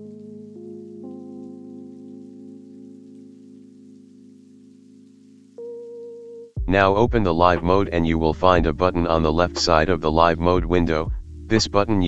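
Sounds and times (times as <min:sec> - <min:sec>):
soft synthesizer pad chords: 0:00.0 - 0:12.0.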